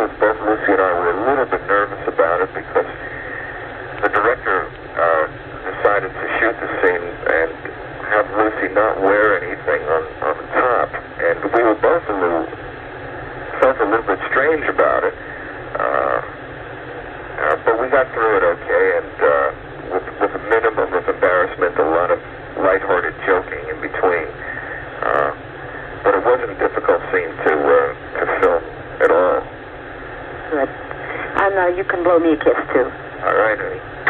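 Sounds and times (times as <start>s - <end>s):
man talking over telephone: 0.0s - 12.6s, 13.4s - 16.4s, 17.4s - 29.5s, 30.4s - 33.9s.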